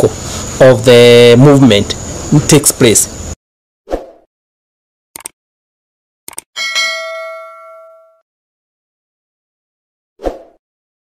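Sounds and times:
mouse clicks: 0:05.2 - 0:05.4
bright bell ding: 0:06.6 - 0:08.2.

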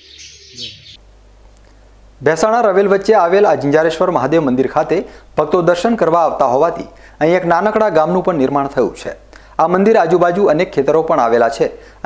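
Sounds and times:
birds chirping faintly: 0:00.0 - 0:01.0.

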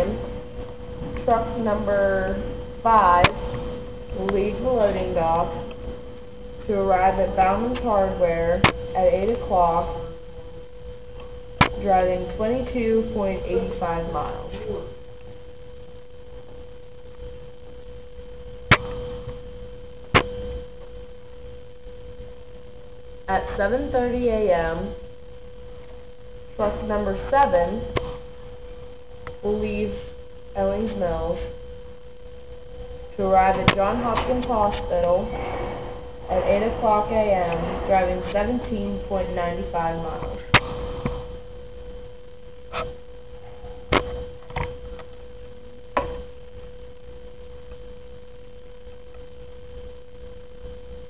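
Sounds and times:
steady hum tone: 0:00.0 - 0:51.0.

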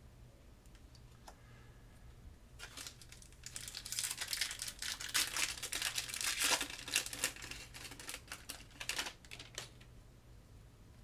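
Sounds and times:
foil wrapper crinkling and tearing: 0:02.6 - 0:09.9.

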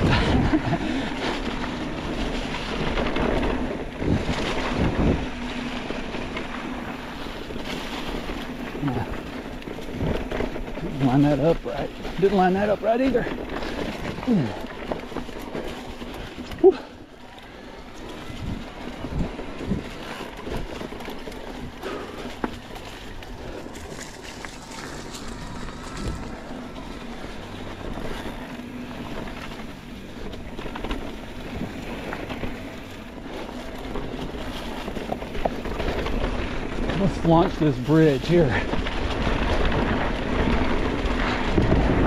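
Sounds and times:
wind on microphone: 0:00.0 - 0:01.2, 0:02.4 - 0:06.0, 0:23.1 - 0:29.4, 0:38.7 - 0:42.0
bike rattling and knocking: 0:00.0 - 0:42.0
bike tyres rolling through leaves: 0:00.0 - 0:42.0.

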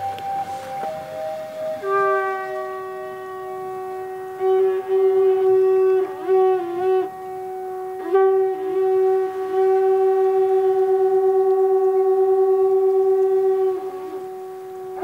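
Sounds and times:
conch shell trumpet blast: 0:00.0 - 0:15.0.

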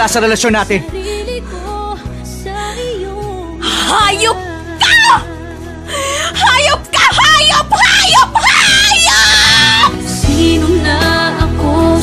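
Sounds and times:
woman screaming and crying: 0:04.8 - 0:05.3, 0:06.3 - 0:10.0.

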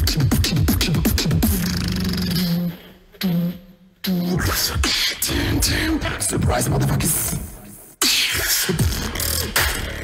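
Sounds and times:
beatboxing into a microphone: 0:00.0 - 0:10.0.

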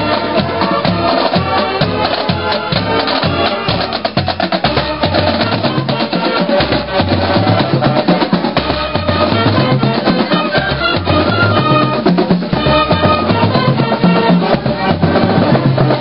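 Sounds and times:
bass drum beat: 0:00.0 - 0:16.0
marching band playing: 0:00.0 - 0:16.0.

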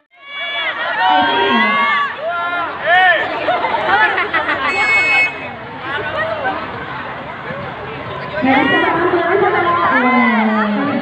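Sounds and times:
young voices shouting excitedly: 0:00.2 - 0:06.6
short high steady tone: 0:04.7 - 0:05.6.

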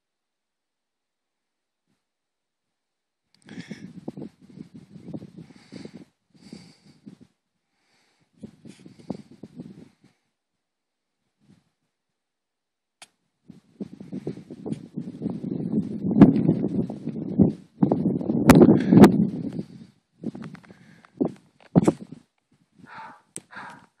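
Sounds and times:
wind gusting over microphone: 0:03.5 - 0:07.3, 0:08.4 - 0:10.1, 0:13.5 - 0:23.0.

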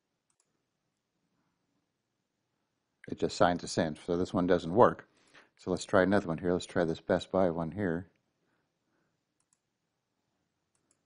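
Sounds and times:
faint computer mouse clicks: 0:00.3 - 0:00.6, 0:09.4 - 0:09.7, 0:10.7 - 0:11.0.

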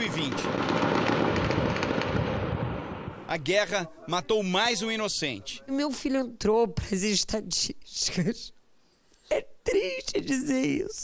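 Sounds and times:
rapid gunfire with echoes: 0:00.0 - 0:03.3.

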